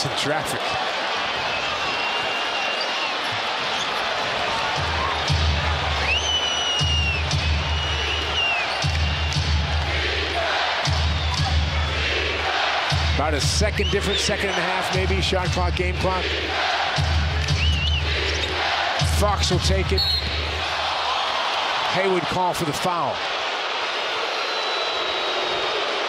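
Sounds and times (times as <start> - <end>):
arena crowd noise: 0.0 - 26.0
sneakers squeaking on wooden floor: 1.7 - 5.2
arena music with heavy bass beat: 4.7 - 6.2, 6.8 - 20.8.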